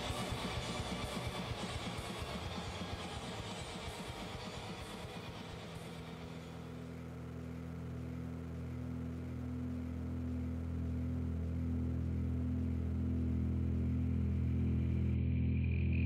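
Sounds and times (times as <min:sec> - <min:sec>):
low sustained drone: 0:00.0 - 0:16.0.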